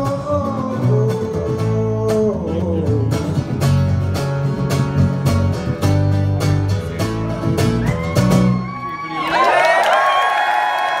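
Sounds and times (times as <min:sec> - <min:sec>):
held guitar notes: 0:00.0 - 0:08.7
audience cheering and shouting: 0:07.6 - 0:11.0.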